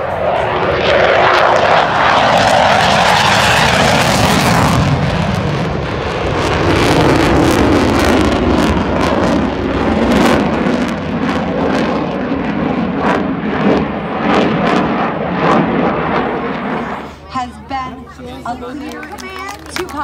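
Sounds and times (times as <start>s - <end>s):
fighter jet flying past: 0.0s - 17.2s.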